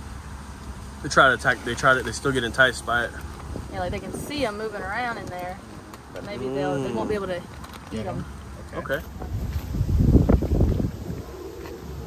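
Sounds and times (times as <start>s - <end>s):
wind buffeting microphone: 3.4s - 5.9s, 8.2s - 12.0s.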